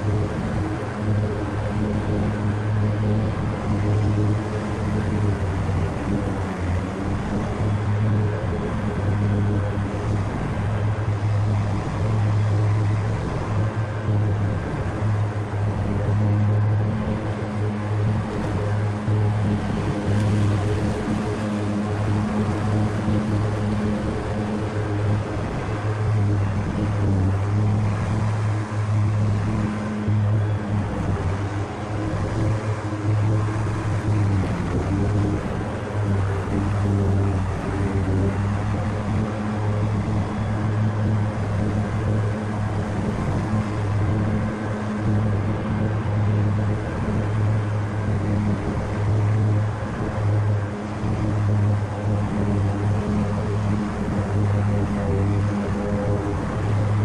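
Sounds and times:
riding mower engine running: 0.0s - 57.0s
mower blades cutting grass: 14.0s - 47.4s.

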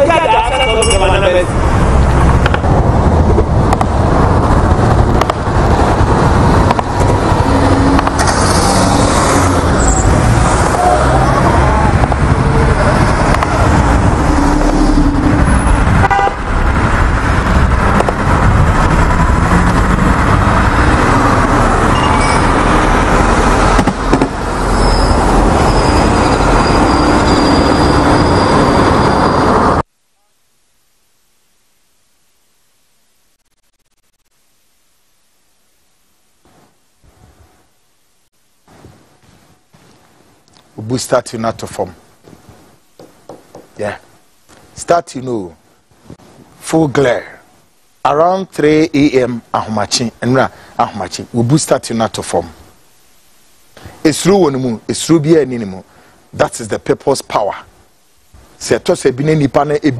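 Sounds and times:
thin high tone: 0.0s - 1.5s
voices: 0.0s - 1.6s, 10.6s - 13.4s
crowd street noise: 9.8s - 13.6s
car horns honking: 14.7s - 16.5s.

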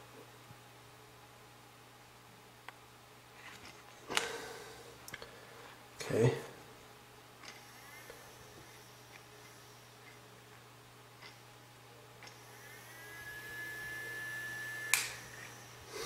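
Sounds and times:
low steady hum: 0.0s - 16.0s
small cooling fan whine: 0.0s - 16.0s.

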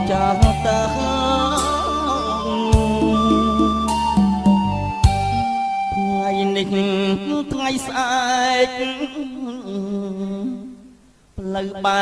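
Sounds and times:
voice singing long low note: 0.0s - 4.2s.

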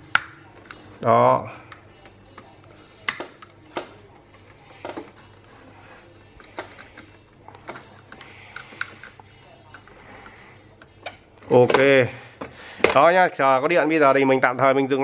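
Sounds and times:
light clicks and taps of parts: 6.3s - 13.0s.

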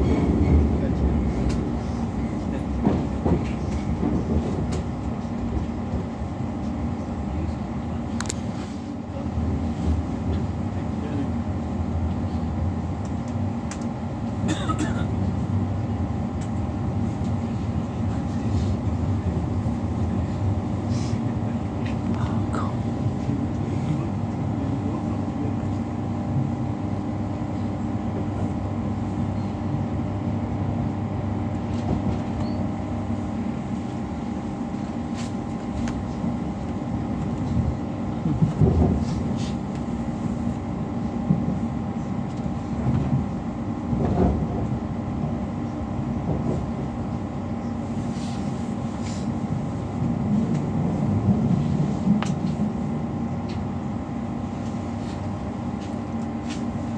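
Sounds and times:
train interior rumble and hum: 0.0s - 56.9s
train bumps: 2.4s - 6.1s, 37.4s - 39.6s, 43.9s - 44.7s.

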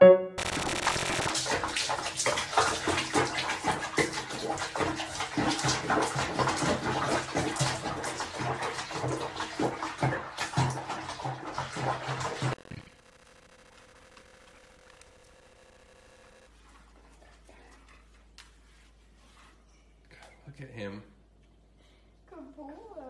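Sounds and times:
water splashing in a plastic tub: 1.3s - 12.6s.

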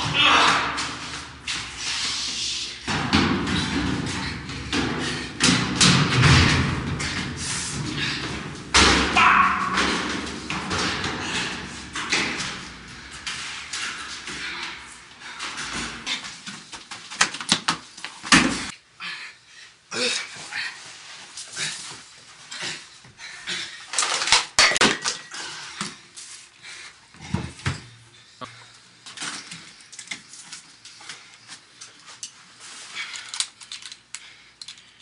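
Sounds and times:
footsteps on metal stairs: 2.8s - 18.7s.

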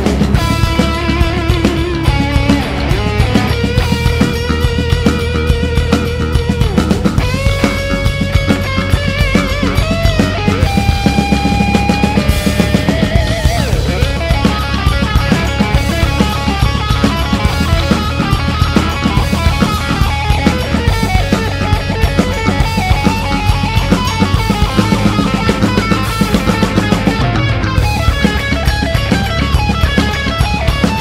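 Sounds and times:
drum kit: 0.0s - 31.0s
electric guitar lead: 0.0s - 31.0s.

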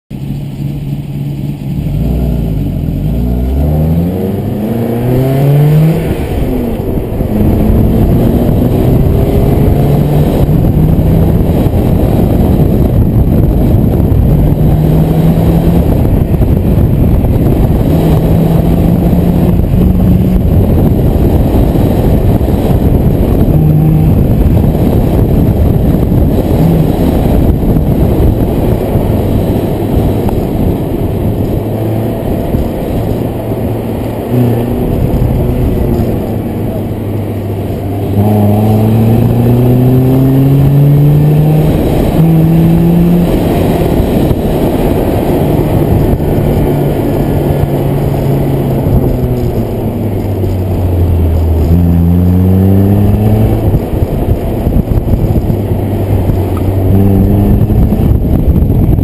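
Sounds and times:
car engine accelerating hard: 0.1s - 59.0s
wind and road noise: 0.1s - 59.0s.

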